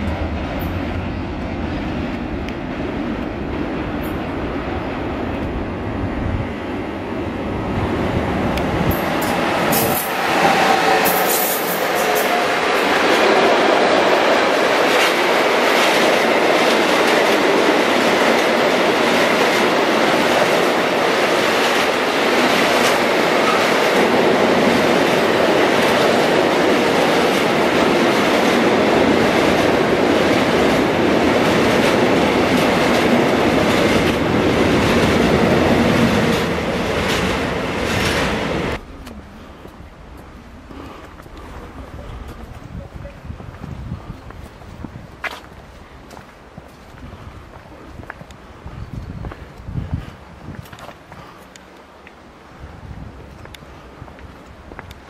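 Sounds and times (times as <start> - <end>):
train wheels on rails: 0.0 - 55.0.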